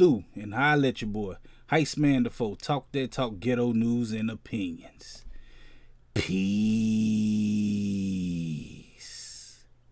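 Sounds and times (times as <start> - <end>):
low pitched tone with hiss: 0.0 - 9.9.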